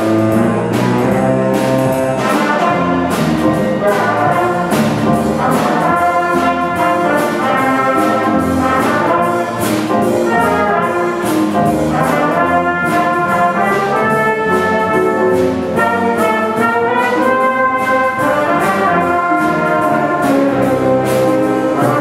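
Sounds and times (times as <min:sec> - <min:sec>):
drums: 0:00.0 - 0:22.0
horn section playing tune: 0:00.0 - 0:22.0
piano: 0:00.0 - 0:22.0.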